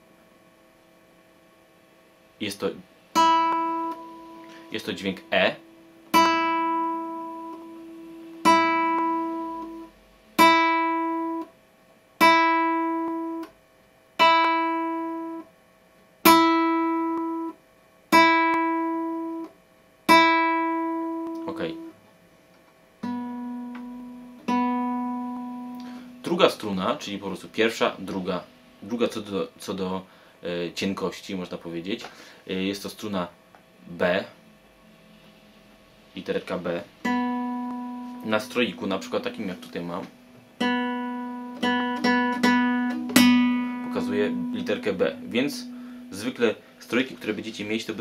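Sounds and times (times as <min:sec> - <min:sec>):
guitar string plucked: 0:18.2 - 0:19.5, 0:23.0 - 0:26.3, 0:37.0 - 0:46.3.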